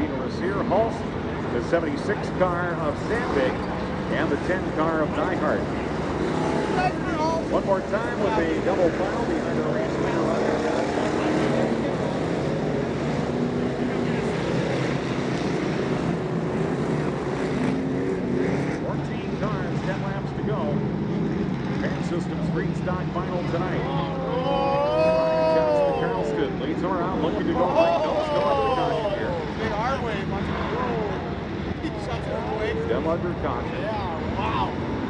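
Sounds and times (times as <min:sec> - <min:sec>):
engines revving: 0:00.0 - 0:35.0
race car engines droning: 0:00.0 - 0:35.0.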